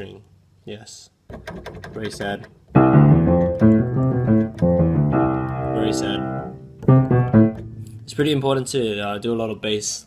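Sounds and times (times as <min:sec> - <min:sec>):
piano chords: 0:02.7 - 0:08.3.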